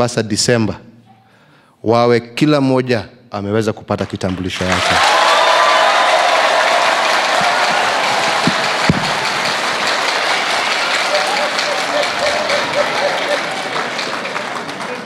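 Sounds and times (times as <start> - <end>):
audience applauding: 4.0 - 15.0
people cheering: 4.6 - 15.0.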